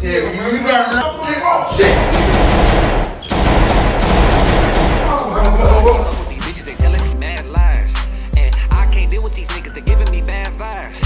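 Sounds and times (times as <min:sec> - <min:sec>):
rapid handgun fire: 0:01.8 - 0:05.3.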